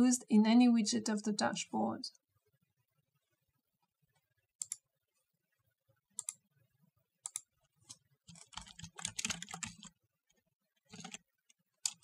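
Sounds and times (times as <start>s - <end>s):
typing on computer keyboard: 7.2s - 10.0s, 10.8s - 12.0s.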